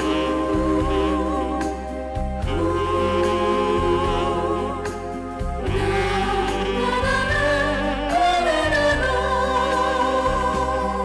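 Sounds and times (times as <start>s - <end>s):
band accompaniment with bass: 0.0s - 11.0s
women singing in harmony: 0.0s - 11.0s.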